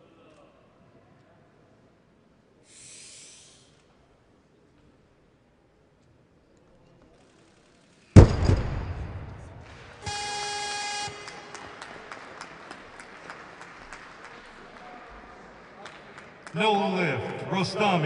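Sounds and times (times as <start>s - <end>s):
low hall noise: 0.0s - 18.0s
barbell crashing onto platform: 8.2s - 10.1s
electronic buzzer: 10.0s - 11.8s.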